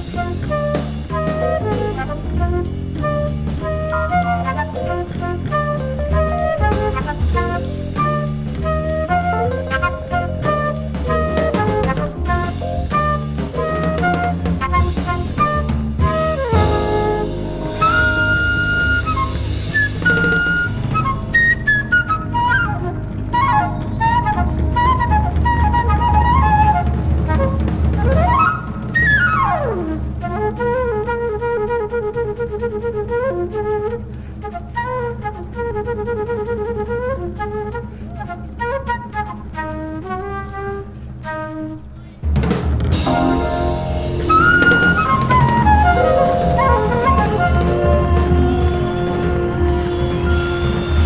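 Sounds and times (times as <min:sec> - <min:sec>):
jazz flute solo: 0:00.0 - 0:51.0
low band accompaniment: 0:00.0 - 0:51.0.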